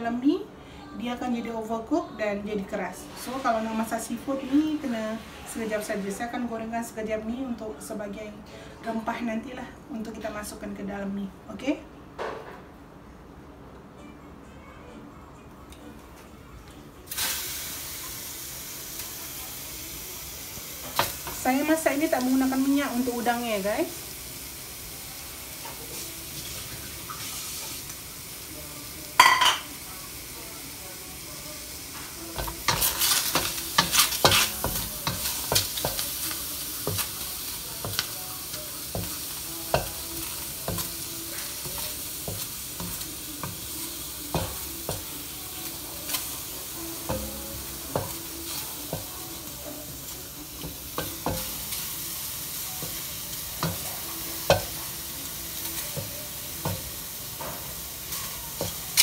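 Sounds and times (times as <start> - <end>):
prawns sizzling in a wok: 2.6 - 6.5, 17.1 - 59.0.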